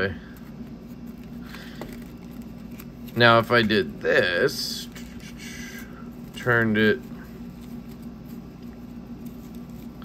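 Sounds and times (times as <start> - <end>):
steady low hum: 0.0 - 10.0
plastic bags rustling and crinkling: 6.0 - 10.0.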